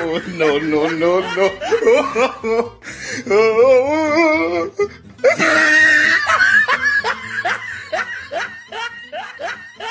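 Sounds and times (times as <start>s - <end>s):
person laughing: 0.0s - 9.9s.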